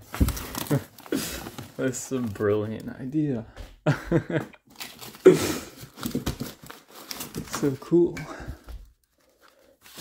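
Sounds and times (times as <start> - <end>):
rustling and handling noise: 0.0 - 3.7, 4.6 - 10.0
person laughing: 3.8 - 4.6.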